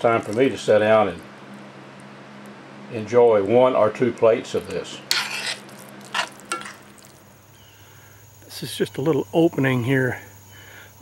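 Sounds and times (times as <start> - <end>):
fork scraping a skillet: 5.0 - 6.9.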